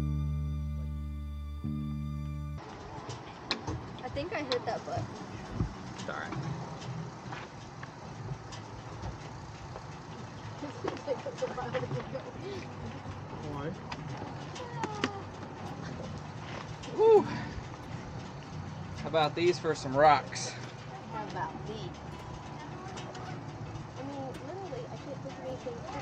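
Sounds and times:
low hum: 4.9 - 26.0
people talking indistinctly: 19.0 - 26.0.

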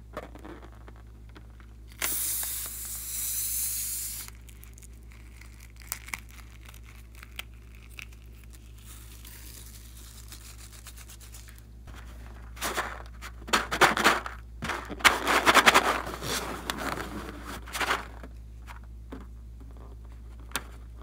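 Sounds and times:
air hissing out of balloon: 2.0 - 4.4.

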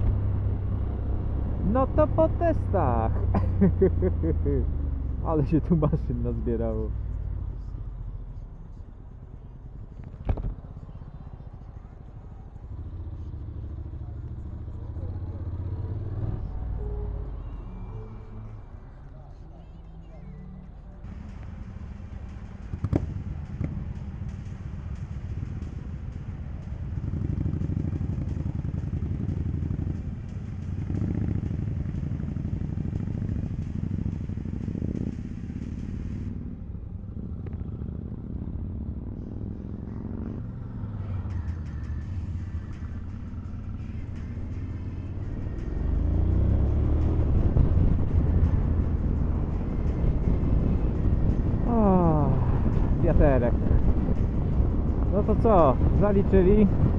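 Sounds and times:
motorcycle engines idling: 0.0 - 56.9.

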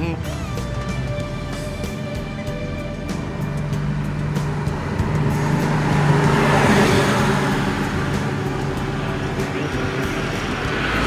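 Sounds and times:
car passing by: 2.1 - 11.0.

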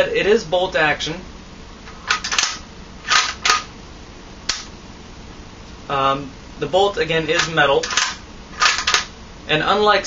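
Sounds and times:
rifle bolt clacks: 2.1 - 3.7, 7.3 - 9.1
sharp rifle bolt click: 2.1 - 3.7, 4.5 - 4.7, 7.3 - 9.1.

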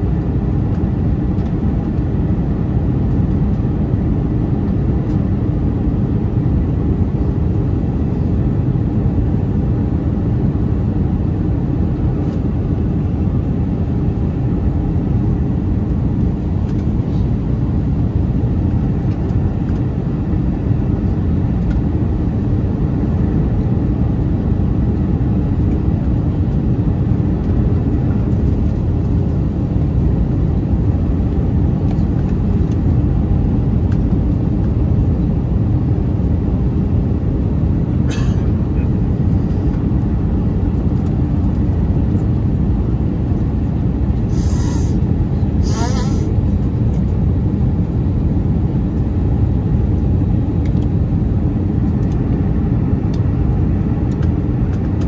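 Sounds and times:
aircraft cabin engine rumble: 0.0 - 55.0.

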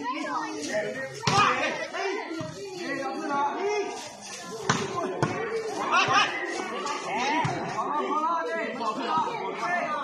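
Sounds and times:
voices of people: 0.0 - 10.0.

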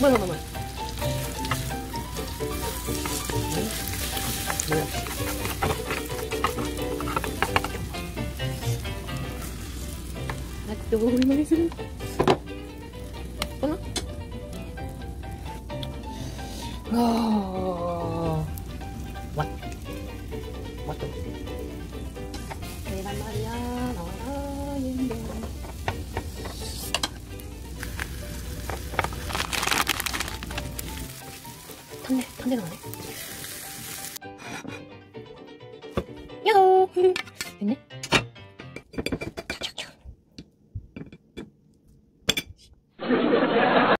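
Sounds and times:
egg mixture sizzling in pan: 0.0 - 34.2
wooden spoon scraping pan: 2.6 - 8.8.

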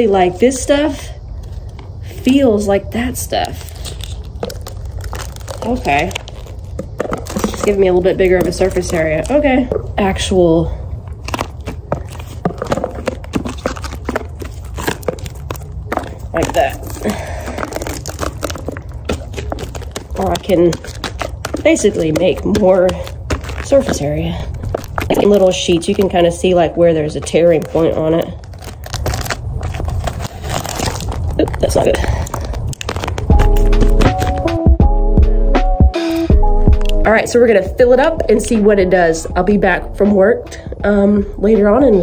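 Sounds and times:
tape unrolling with sticky crackles: 1.3 - 10.3, 11.0 - 34.6
plastic backing rustling: 1.4 - 34.6
music with heavy bass: 33.3 - 37.1
low steady rumble: 36.3 - 42.0.

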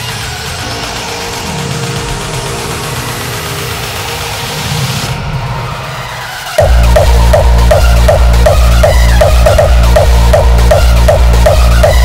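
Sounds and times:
distorted kick drums: 6.6 - 12.0
low synth bass notes: 6.6 - 12.0.

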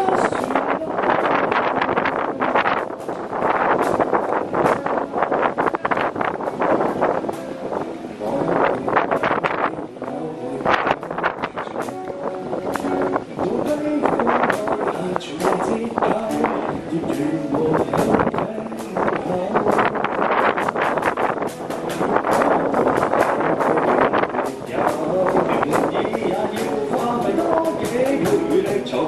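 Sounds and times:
man singing through microphone: 0.0 - 3.0, 7.3 - 21.2, 22.3 - 29.0
strummed acoustic guitar: 0.0 - 29.0.

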